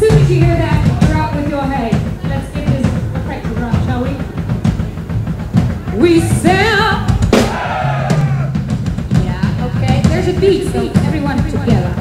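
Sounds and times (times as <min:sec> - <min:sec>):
sharp drum hit: 0:07.2 - 0:09.6.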